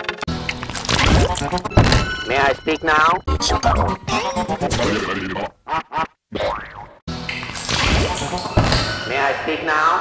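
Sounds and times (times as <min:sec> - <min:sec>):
distorted cartoon logo audio: 0:03.2 - 0:05.5.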